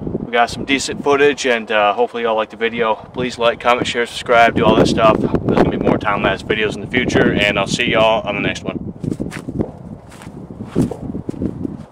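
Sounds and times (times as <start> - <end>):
footsteps crunching through dry grass: 9.0 - 11.9.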